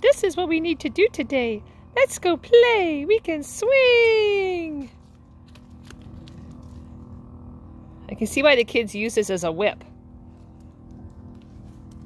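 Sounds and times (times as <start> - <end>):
faint steady hum: 0.0 - 12.0
low outdoor rumble: 0.0 - 12.0.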